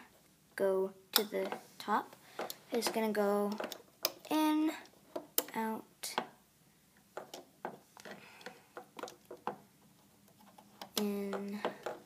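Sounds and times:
hook and rubber bands clicking on pins: 2.4 - 6.3, 7.2 - 12.0.

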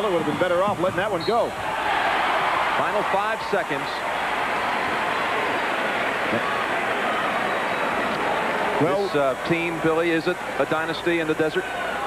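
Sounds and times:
arena crowd din: 0.0 - 12.0.

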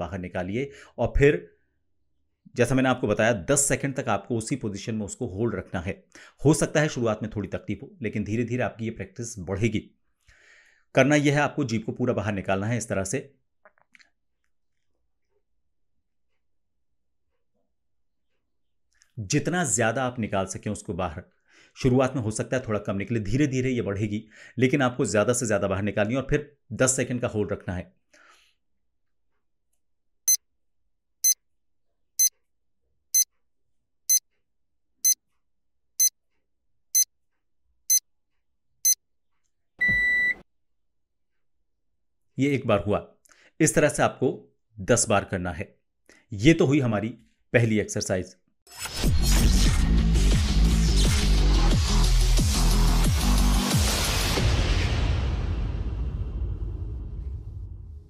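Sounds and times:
wet mouth clicks: 13.6 - 15.3
alarm clock beep: 39.8 - 40.4.

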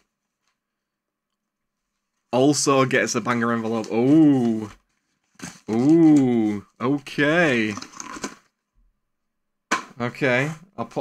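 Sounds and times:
man speaking: 2.3 - 4.8, 5.7 - 7.9, 10.0 - 11.0.

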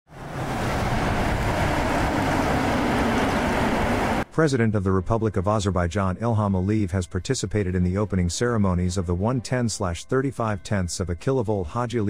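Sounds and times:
cars driving past: 0.1 - 4.2.

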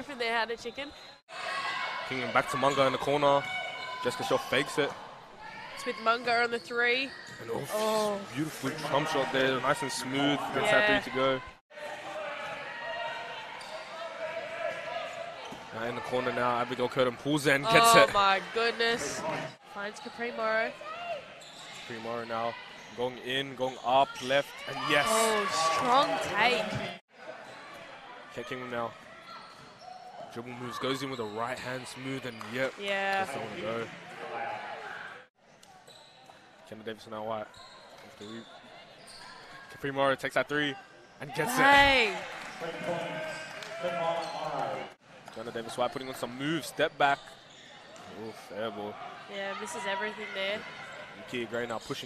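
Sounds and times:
crowd cheering: 24.5 - 28.1, 41.2 - 45.0.

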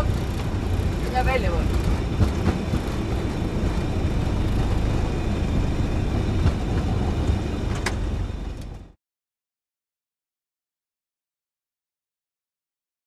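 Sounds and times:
wheels rolling on runway: 0.0 - 8.9
loud rumble of jet engines reversing: 0.0 - 9.0.

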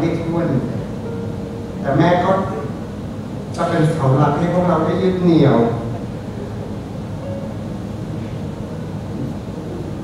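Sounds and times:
room ambience rumble and hiss: 0.0 - 10.0.

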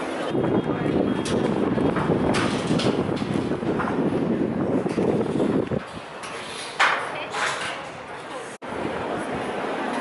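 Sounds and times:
wind buffeting microphone: 0.3 - 6.9.

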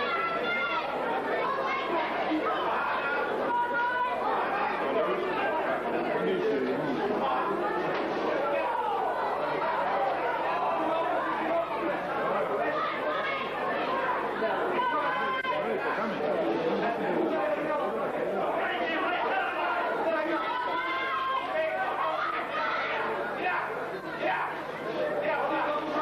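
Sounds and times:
crowd talking and calling out: 0.0 - 26.0.

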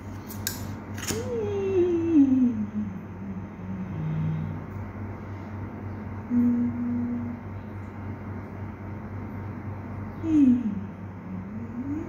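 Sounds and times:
person humming: 1.2 - 4.6, 6.3 - 7.4, 10.2 - 12.0.

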